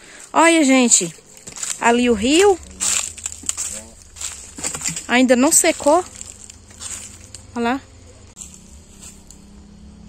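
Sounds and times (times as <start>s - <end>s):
low rumble: 1.6s - 10.0s.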